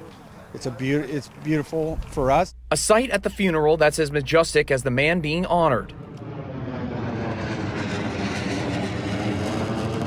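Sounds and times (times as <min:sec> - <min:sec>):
jet engines rushing overhead: 0:05.2 - 0:10.0.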